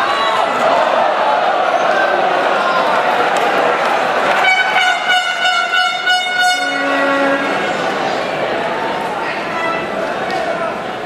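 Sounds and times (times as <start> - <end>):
stadium crowd noise: 0.0 - 11.0
fan's horn blowing: 4.3 - 8.2.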